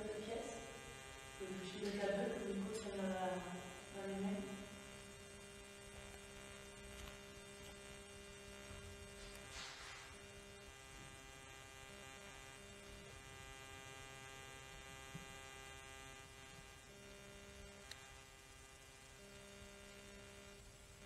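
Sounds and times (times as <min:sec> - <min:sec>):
electrical hum with buzzing: 0:00.0 - 0:21.0
soft hiss: 0:00.0 - 0:21.0.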